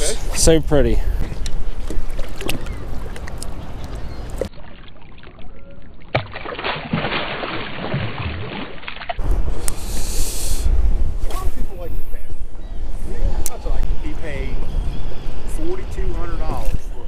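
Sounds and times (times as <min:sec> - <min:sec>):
water sloshing beside boat: 0:01.2 - 0:09.2
fish splashing into water: 0:01.9 - 0:09.2
wind buffeting microphone: 0:09.2 - 0:17.0.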